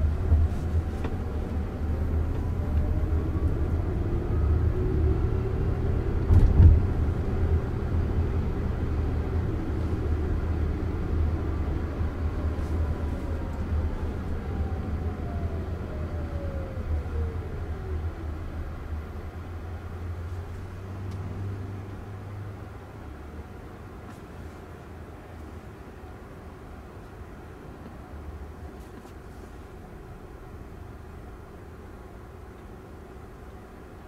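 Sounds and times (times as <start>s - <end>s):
road and tyre rumble: 0.0s - 34.0s.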